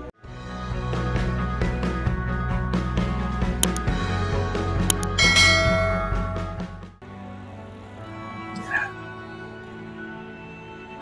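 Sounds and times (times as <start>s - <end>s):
background music: 0.3s - 11.0s
quick clicks: 3.6s - 3.8s, 4.9s - 5.2s
bright bell chime: 5.0s - 6.7s.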